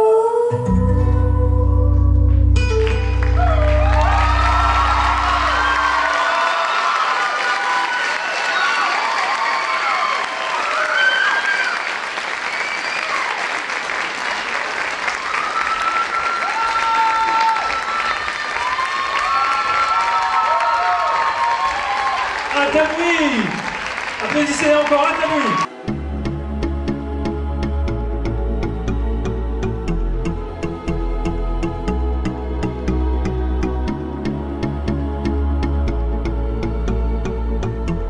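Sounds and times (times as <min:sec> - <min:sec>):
audience applauding: 0:02.8 - 0:25.7
whoops and shouts: 0:03.3 - 0:12.0, 0:15.2 - 0:22.5, 0:25.2 - 0:25.7.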